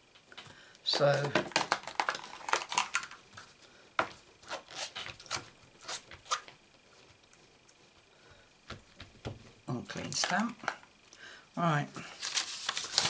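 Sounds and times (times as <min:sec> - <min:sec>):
paper rustling: 0:12.1 - 0:13.0.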